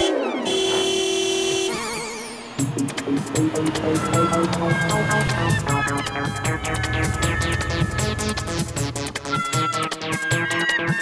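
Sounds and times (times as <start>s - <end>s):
music beat: 2.6s - 11.0s
synthesized falling sweep: 2.7s - 9.5s
warbling synth tone: 3.2s - 9.5s.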